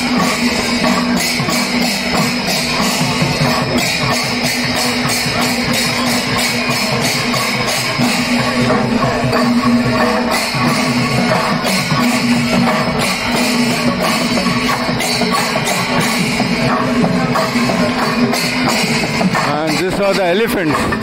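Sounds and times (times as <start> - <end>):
drums beating: 0.0 - 21.0
metal cymbals clashing: 0.0 - 21.0.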